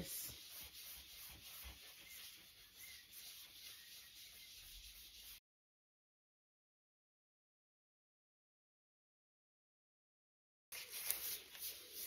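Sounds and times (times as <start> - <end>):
cloth rubbing on plate: 0.0 - 5.4.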